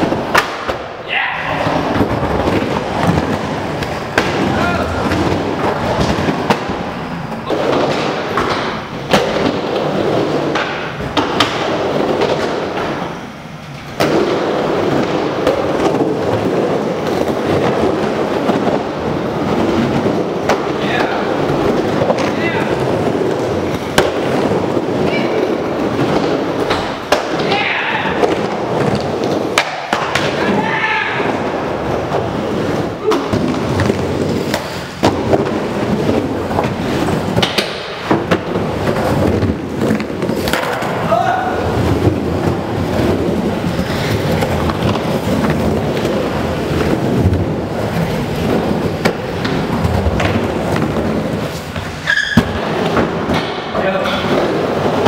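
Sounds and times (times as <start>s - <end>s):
skateboard wheels rolling on wood: 0.0s - 55.0s.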